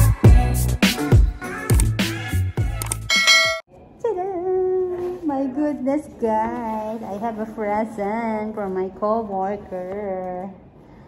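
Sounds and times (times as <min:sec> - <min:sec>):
bright bell-like ding: 0:03.1 - 0:03.6.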